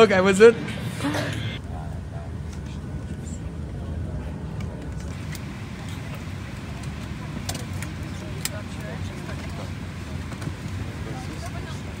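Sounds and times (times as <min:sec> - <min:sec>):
bus engine low rumble: 0:00.6 - 0:12.0.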